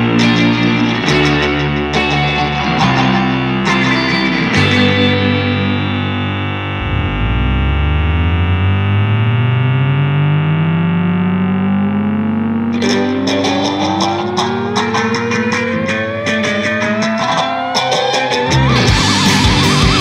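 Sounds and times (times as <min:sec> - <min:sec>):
distorted electric guitar chord: 0:00.0 - 0:20.0
rising guitar tone: 0:00.0 - 0:20.0.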